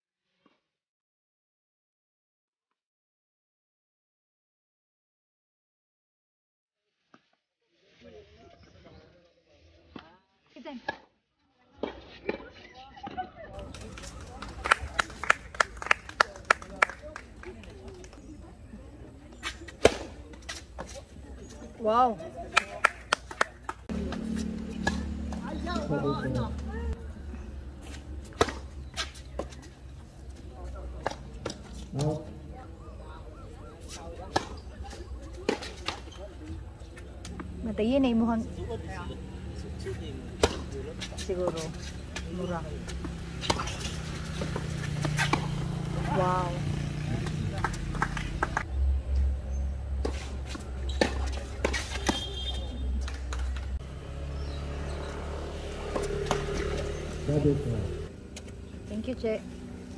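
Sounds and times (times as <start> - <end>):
tennis ball hit by rackets: 19.7 - 21.0, 23.9 - 26.0, 27.8 - 29.6, 34.3 - 36.2, 40.3 - 45.8, 50.0 - 53.6, 55.8 - 57.0
tennis ball bouncing on court: 23.9 - 26.7, 27.8 - 29.6, 34.3 - 36.2, 40.3 - 46.5, 50.0 - 53.6, 55.8 - 57.1.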